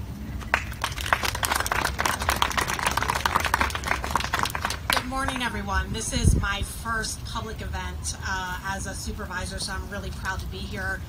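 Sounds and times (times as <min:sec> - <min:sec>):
crowd applauding: 0:00.4 - 0:05.5.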